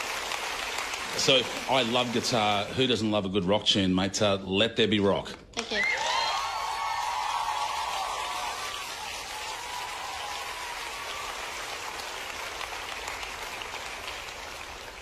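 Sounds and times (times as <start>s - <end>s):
audience applause: 0.0s - 3.0s, 5.8s - 15.0s
audience cheering: 5.7s - 15.0s.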